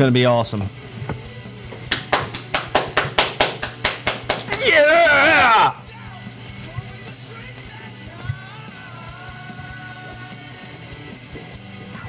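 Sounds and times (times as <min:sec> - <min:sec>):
hand claps: 0:01.8 - 0:04.8
loud drawn-out yell: 0:04.5 - 0:06.0.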